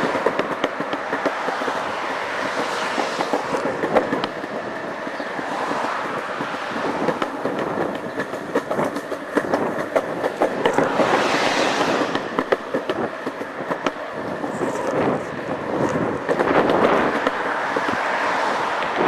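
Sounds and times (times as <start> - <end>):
handheld camera rattling and clicking: 0.0 - 19.0.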